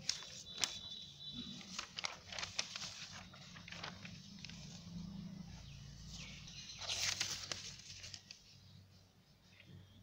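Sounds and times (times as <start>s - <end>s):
paper rustling: 0.0s - 5.1s, 6.1s - 8.6s.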